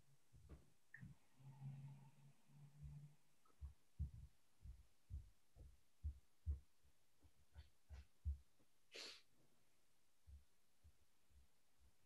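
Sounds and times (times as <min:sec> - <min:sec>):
faint low soft thumps: 0:02.8 - 0:08.6
short hiss: 0:08.9 - 0:09.2.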